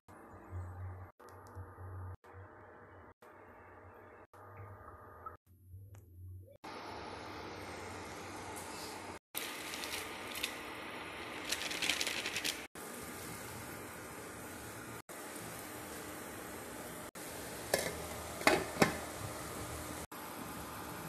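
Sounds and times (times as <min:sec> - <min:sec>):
cooling fan humming: 0:06.7 - 0:21.0.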